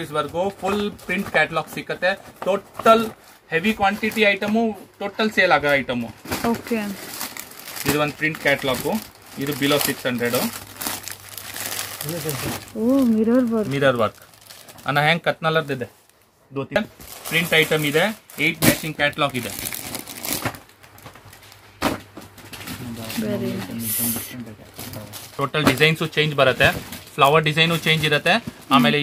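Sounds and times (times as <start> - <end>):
person speaking: 12.0 - 14.1, 22.8 - 25.1, 28.7 - 29.0.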